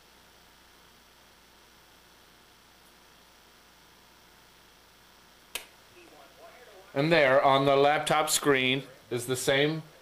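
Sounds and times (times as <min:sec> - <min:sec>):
room hiss: 0:00.0 - 0:10.0
sharp click: 0:05.5 - 0:05.8.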